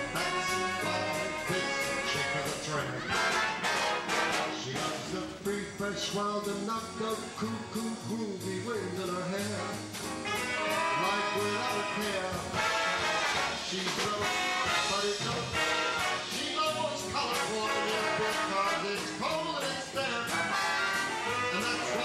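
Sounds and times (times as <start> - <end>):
brass section: 0.0 - 5.1, 10.2 - 19.2, 20.2 - 22.0
swing big band playing: 0.0 - 22.0.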